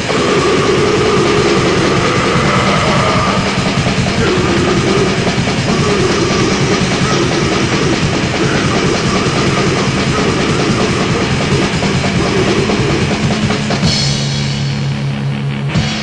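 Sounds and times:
very fast drumming: 0.0 - 14.9
distorted guitar: 0.0 - 16.0.

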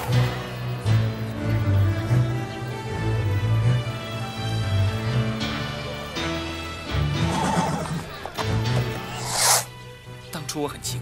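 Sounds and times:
background music: 0.0 - 11.0
horse snorting: 7.2 - 8.1.

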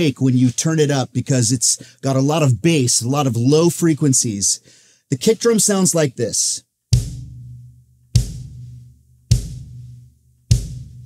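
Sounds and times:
kick drum booms: 6.9 - 11.0.

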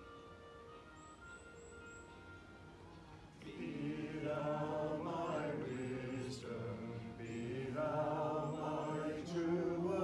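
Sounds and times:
faint recorded hymn music: 0.0 - 10.0.

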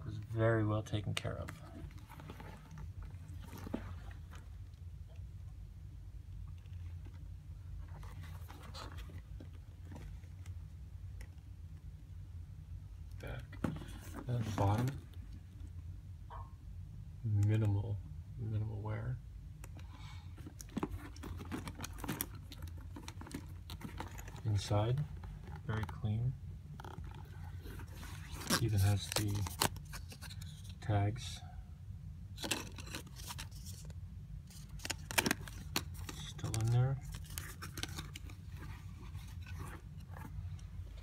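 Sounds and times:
faint low hum: 0.0 - 41.0.

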